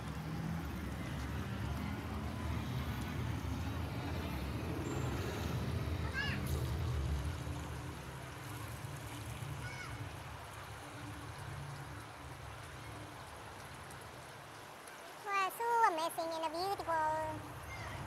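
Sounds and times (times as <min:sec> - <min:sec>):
low rumble of city noise: 0:00.0 - 0:18.0.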